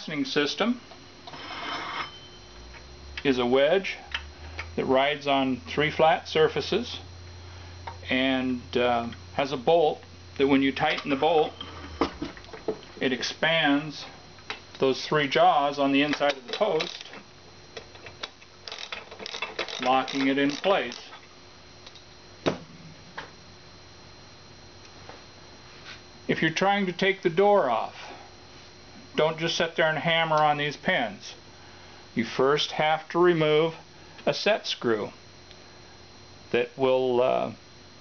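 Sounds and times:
faint steady high tone: 0:00.0 - 0:04.2, 0:04.8 - 0:12.2
metal scraping with ringing: 0:01.3 - 0:02.5, 0:11.1 - 0:12.0
metal tools clicking: 0:18.1 - 0:21.2.

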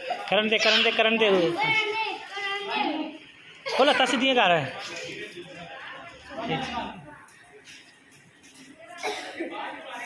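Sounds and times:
people chattering quietly: 0:00.0 - 0:10.0.

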